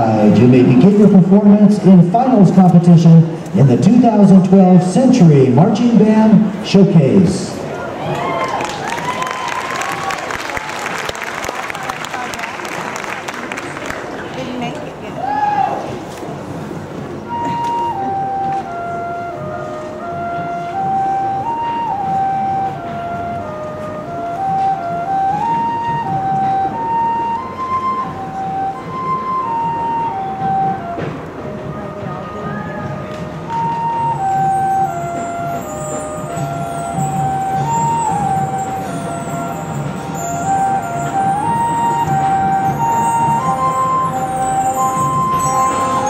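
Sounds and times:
high melody line: 0.0 - 7.2, 17.1 - 46.0.

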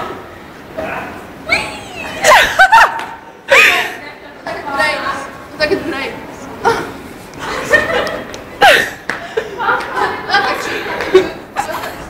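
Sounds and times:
steady background noise: 0.0 - 12.0
girls squealing: 1.5 - 4.0.

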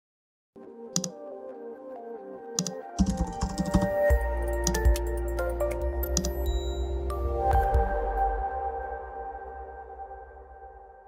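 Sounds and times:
soft background music: 0.6 - 11.0.

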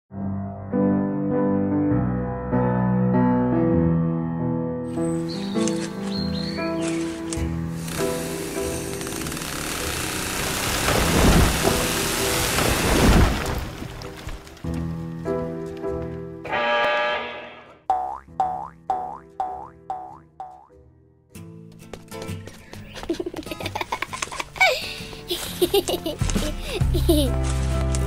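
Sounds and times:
cartoon music: 16.5 - 20.8
falling boing effects: 17.9 - 20.7.

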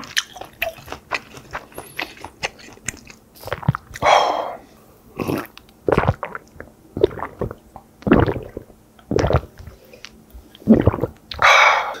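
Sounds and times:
mouth chewing rice: 0.0 - 12.0.

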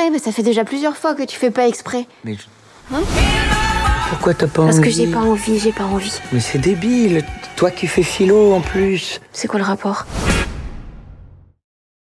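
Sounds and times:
whoosh sound effect: 10.0 - 11.3.

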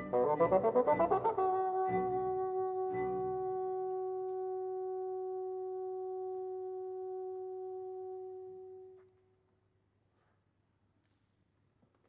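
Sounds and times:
bassoon holding a high note: 0.0 - 9.1.

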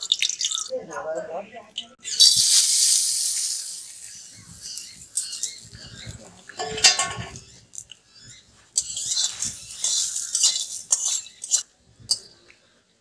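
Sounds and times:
hot oil sizzling in wok: 2.0 - 5.7, 8.8 - 12.2
metal spatula stirring: 3.9 - 7.4, 8.7 - 12.3.

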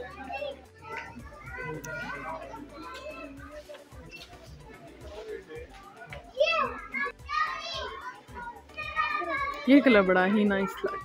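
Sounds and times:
faint music: 0.0 - 11.0.

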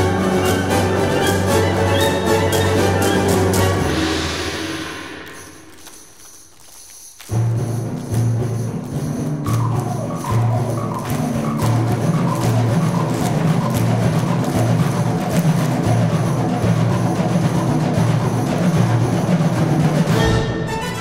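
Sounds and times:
wind band playing: 0.0 - 5.4, 9.7 - 21.0
sharp percussion strokes: 0.0 - 21.0.

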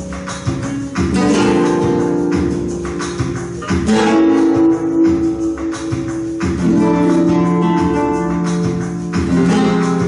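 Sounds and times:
flamenco guitars strumming: 0.0 - 10.0.

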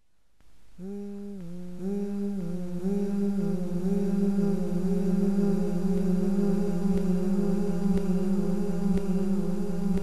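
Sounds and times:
person humming a slow melody: 0.7 - 10.0.

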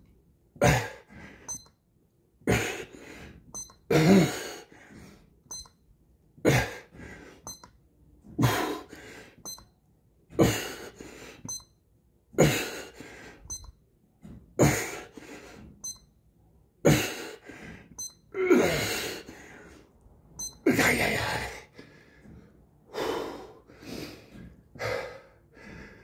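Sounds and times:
short high electronic beep: 18.0 - 18.2, 20.4 - 20.6.

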